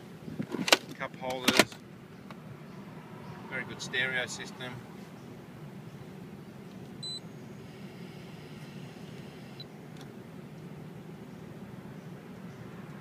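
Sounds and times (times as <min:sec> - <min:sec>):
idling vehicle hum: 0:00.0 - 0:13.0
short electronic beep: 0:07.0 - 0:07.2.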